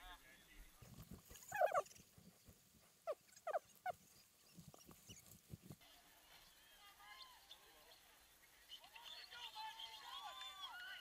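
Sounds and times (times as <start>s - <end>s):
dog barking: 1.5s - 1.8s.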